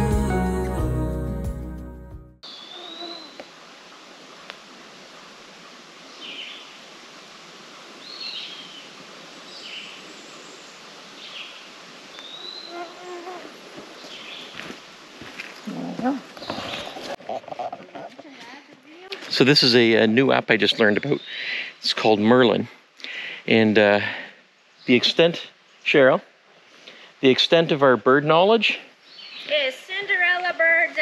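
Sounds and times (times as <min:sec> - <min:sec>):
songbirds singing: 0:08.0 - 0:08.9, 0:09.5 - 0:12.9, 0:20.8 - 0:21.9, 0:29.0 - 0:29.8.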